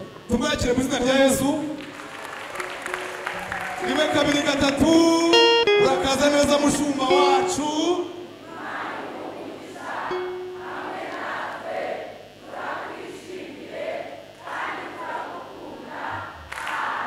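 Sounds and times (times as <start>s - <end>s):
congregation shouting and cheering: 2.0s - 17.0s.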